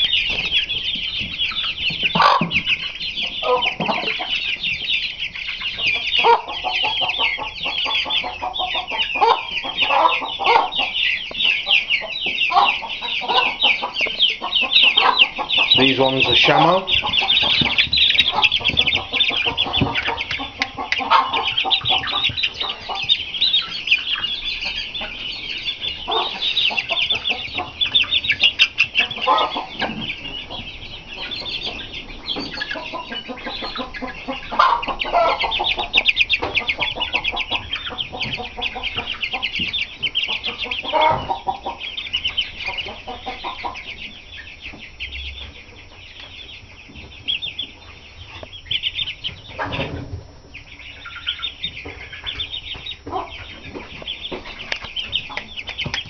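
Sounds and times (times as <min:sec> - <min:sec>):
lower chick calls: 0:00.0 - 0:49.8
chicks peeping: 0:00.0 - 0:56.0.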